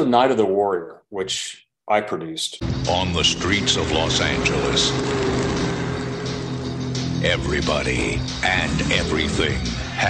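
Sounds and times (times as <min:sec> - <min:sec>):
background music with held notes: 0:02.6 - 0:10.0.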